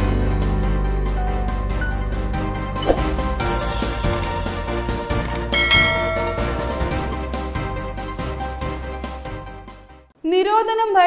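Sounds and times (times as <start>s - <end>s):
background music: 0.0s - 11.0s
short clicks: 4.1s - 4.4s, 5.2s - 5.5s
bell chime: 5.5s - 7.2s.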